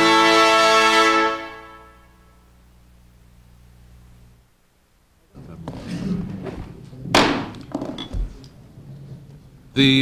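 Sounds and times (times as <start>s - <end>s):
faint room murmur: 2.0s - 10.0s
sharp loud knock: 7.1s - 8.0s.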